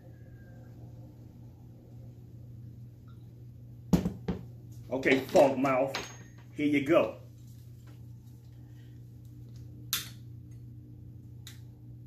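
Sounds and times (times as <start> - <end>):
faint low hum: 0.0 - 12.0
objects knocking on counter: 3.9 - 4.5.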